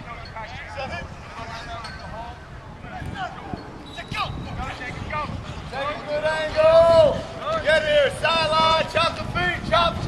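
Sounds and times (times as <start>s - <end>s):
players and coaches shouting: 5.8s - 10.0s.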